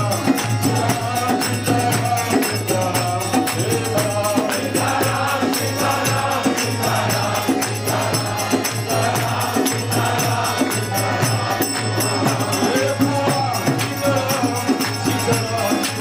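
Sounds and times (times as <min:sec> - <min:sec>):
group chanting: 0:00.0 - 0:16.0
jingling hand percussion: 0:00.0 - 0:16.0.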